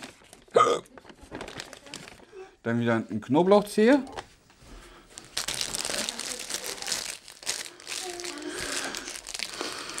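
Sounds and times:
paper bag rustling: 0.0 - 2.2, 5.1 - 10.0.

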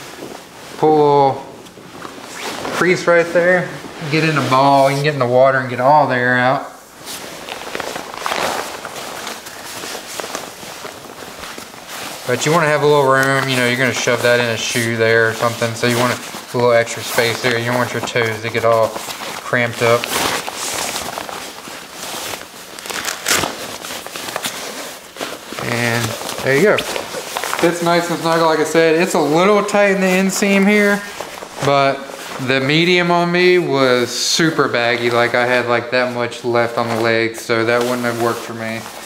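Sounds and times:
nylon fabric rustling and crinkling: 0.0 - 39.0.

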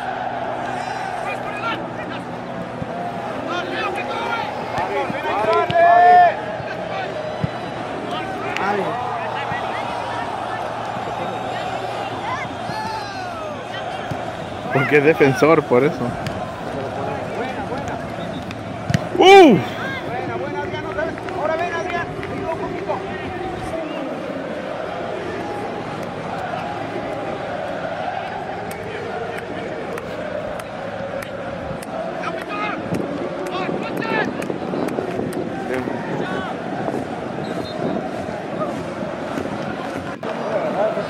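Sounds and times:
distant shouts and chatter: 0.0 - 41.0
outdoor background noise: 0.0 - 41.0.

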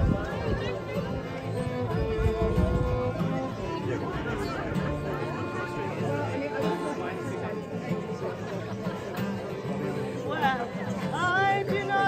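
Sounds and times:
crowd chatter: 0.0 - 12.0
fiddle and acoustic guitar folk music: 0.0 - 12.0.

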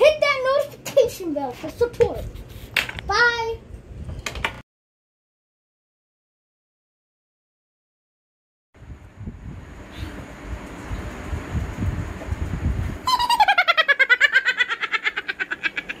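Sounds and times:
low rumbling noise: 8.8 - 13.3
fast-pulsing cackling laugh: 13.0 - 16.0.

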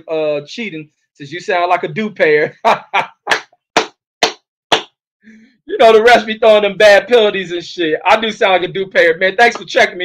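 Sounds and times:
hand claps: 3.2 - 5.0, 9.5 - 9.8.

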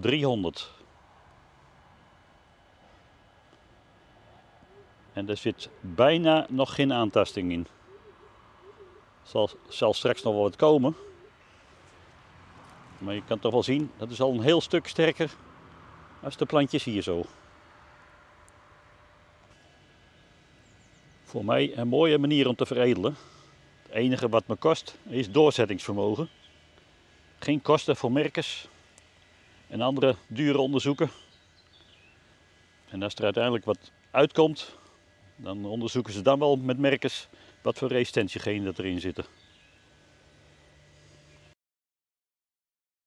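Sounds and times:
man speaking: 0.0 - 0.8, 5.2 - 7.7, 9.2 - 11.0, 13.0 - 15.4, 16.2 - 17.4, 21.3 - 23.3, 23.9 - 26.3, 27.4 - 28.7, 29.7 - 31.2, 32.9 - 34.8, 35.4 - 39.3
faint outdoor background: 0.0 - 41.6
low hooting bird call: 4.2 - 6.0, 7.2 - 11.8.

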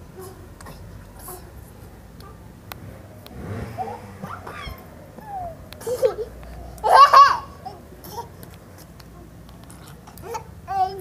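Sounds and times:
child squealing: 4.2 - 7.6.

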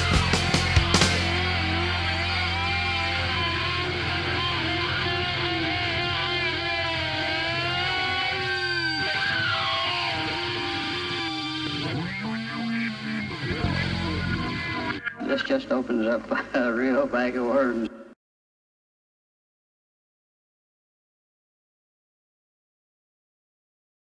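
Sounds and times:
distorted electric guitar: 0.0 - 18.1
low hum: 0.1 - 15.0.

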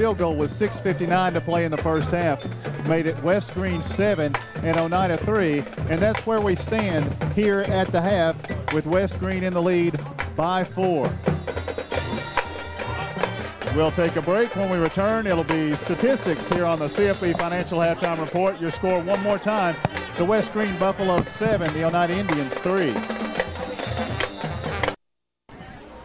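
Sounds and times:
marching band drums: 0.0 - 25.0
faint horns: 0.0 - 26.0.

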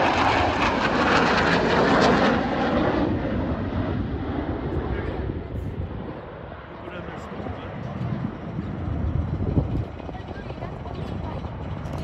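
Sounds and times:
jet roar flying past: 0.0 - 11.9.

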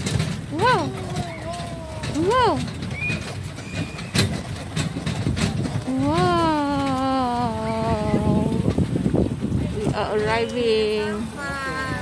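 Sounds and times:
hoof clops: 0.0 - 10.6
carriage rumbling and rattling: 0.0 - 12.0.

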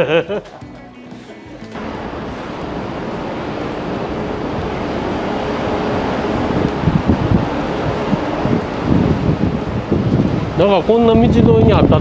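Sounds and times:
street traffic: 0.0 - 11.3
city buses running: 0.0 - 12.0
wind buffeting microphone: 1.9 - 12.0.

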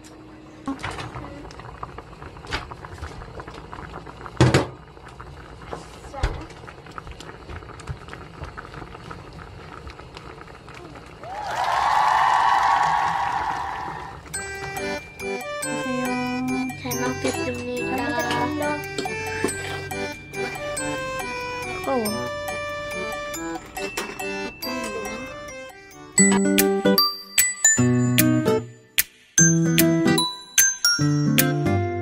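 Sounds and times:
loud held pitched tone: 14.0 - 28.9
background music with beat: 14.4 - 32.0.

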